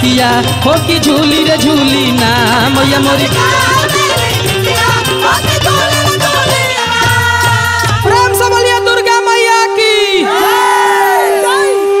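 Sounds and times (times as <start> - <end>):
steady held accompaniment note: 0.0 - 12.0
group shouting and whooping: 10.2 - 11.9.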